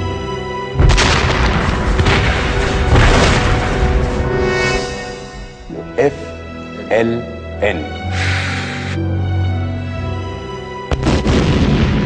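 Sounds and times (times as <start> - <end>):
film soundtrack music: 0.0 - 12.0
booms: 0.8 - 4.6, 10.9 - 12.0
loud explosion: 0.8 - 5.4, 10.9 - 12.0.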